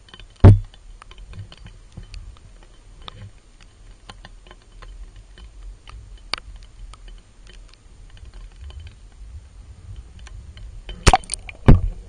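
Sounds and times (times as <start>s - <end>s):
small irregular clicks and ticks: 0.0s - 12.0s.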